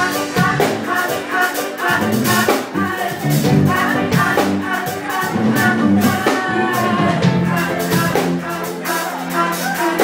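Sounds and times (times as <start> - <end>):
drum kit: 0.0 - 10.0
guitar: 0.0 - 10.0.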